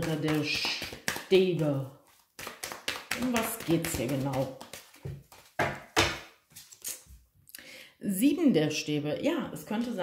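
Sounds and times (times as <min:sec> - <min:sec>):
soft card rustles and taps: 0:00.0 - 0:07.1.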